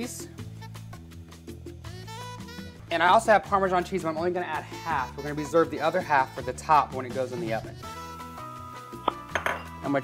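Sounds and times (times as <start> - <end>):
soft background music: 0.0 - 10.0
spoon clinking on china bowl: 9.1 - 9.8.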